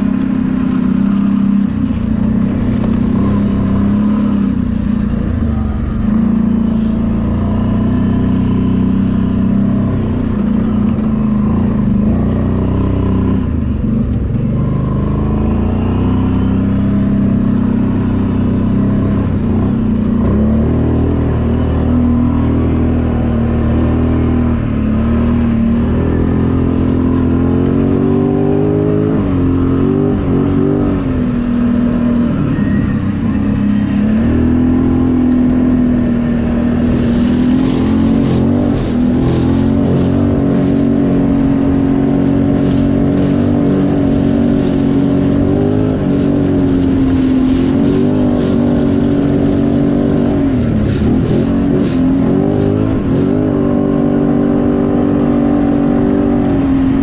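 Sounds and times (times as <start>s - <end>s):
atv engine revving: 0.0s - 57.0s
tyres crackling on gravel: 32.4s - 53.8s.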